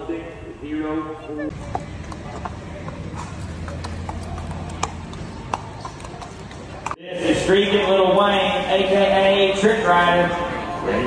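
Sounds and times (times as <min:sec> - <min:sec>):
horse hooves on dirt: 0:01.5 - 0:07.0.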